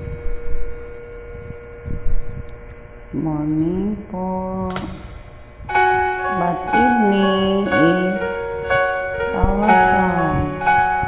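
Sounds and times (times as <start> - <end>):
steady electronic tone: 0.0 - 11.0.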